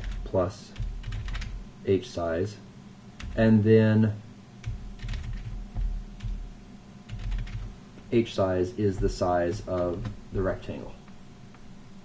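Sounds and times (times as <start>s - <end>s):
computer keyboard typing: 0.0s - 0.2s, 0.8s - 1.6s, 3.2s - 3.5s, 4.6s - 6.4s, 7.1s - 7.7s, 9.0s - 10.6s.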